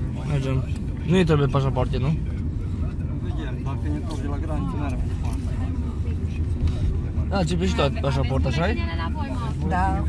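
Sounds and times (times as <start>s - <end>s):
car engine rumble: 0.0s - 10.0s
faint passenger voices: 0.0s - 10.0s
road noise: 0.0s - 10.0s.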